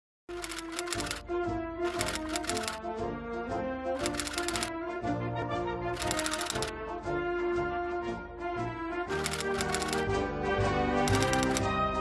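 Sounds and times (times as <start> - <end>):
typewriter key clatter: 0.3 - 1.2, 1.9 - 2.8, 4.0 - 4.7, 6.0 - 6.7, 9.2 - 10.1, 11.1 - 11.7
instrumental theme music: 0.3 - 12.0.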